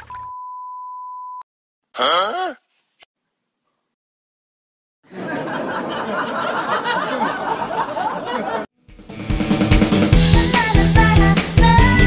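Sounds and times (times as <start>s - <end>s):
censor bleep tone: 0.2s - 1.4s.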